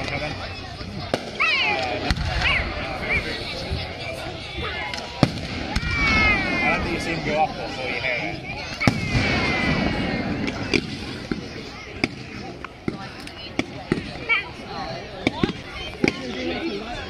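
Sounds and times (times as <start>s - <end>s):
fireworks bangs and crackles: 1.0s - 8.0s, 8.6s - 14.4s, 15.2s - 16.6s.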